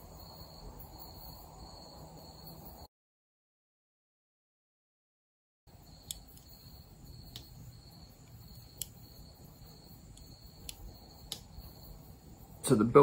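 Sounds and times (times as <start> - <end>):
short high insect chirps: 5.7 - 12.6.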